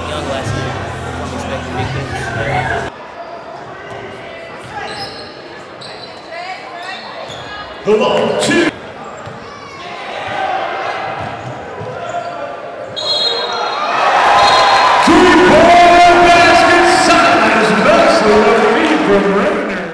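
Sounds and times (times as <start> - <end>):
voices in a large hall: 0.0 - 19.9
sneakers squeaking: 2.2 - 10.4, 11.0 - 13.8
loud shout: 13.3 - 19.6.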